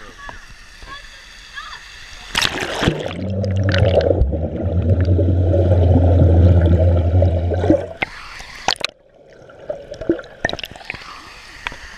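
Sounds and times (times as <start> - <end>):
underwater low hum with bubbling: 2.0 - 11.9
small water splashes: 2.2 - 11.3
water dripping: 2.3 - 11.0.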